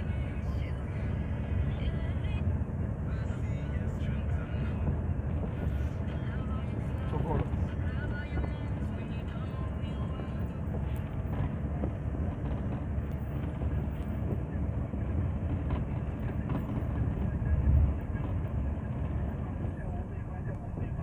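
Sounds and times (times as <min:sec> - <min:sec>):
road and engine rumble in vehicle: 0:00.0 - 0:21.0.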